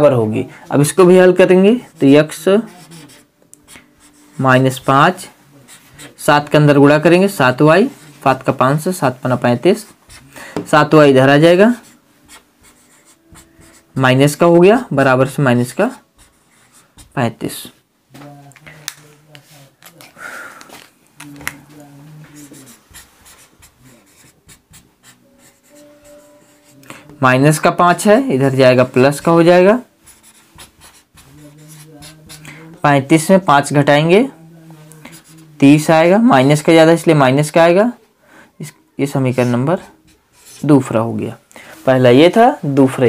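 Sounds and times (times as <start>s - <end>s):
marker pen on whiteboard: 0.7s - 17.4s, 18.2s - 37.7s, 38.6s - 41.4s
marker pen scratching on whiteboard: 1.7s - 6.5s, 9.7s - 10.4s, 11.6s - 14.0s, 15.6s - 17.2s, 21.4s - 26.8s, 30.0s - 32.5s, 39.1s - 40.9s.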